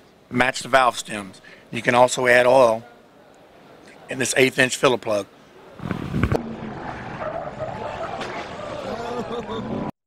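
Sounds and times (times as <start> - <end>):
tires sliding on pavement: 5.8 - 9.9
truck engine revving hard: 6.0 - 9.0.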